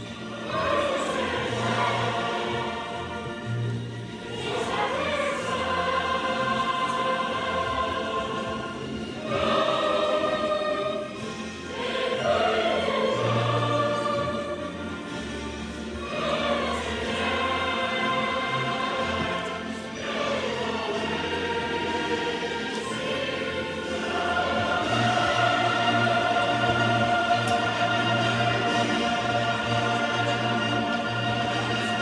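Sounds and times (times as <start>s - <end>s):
girls choir singing long notes: 0.0s - 32.0s.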